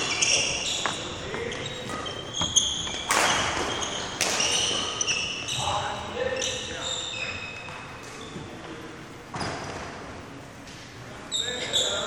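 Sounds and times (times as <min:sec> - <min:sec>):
shoes squeaking on wooden floor: 0:00.0 - 0:08.6.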